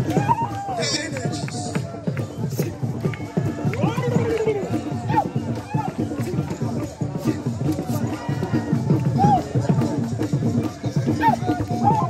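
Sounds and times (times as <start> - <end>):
crowd murmur: 0.0 - 12.0
group singing and chanting: 0.0 - 12.0.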